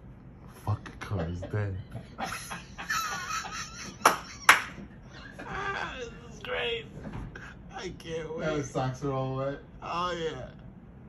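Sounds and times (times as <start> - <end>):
person laughing: 1.2 - 6.2.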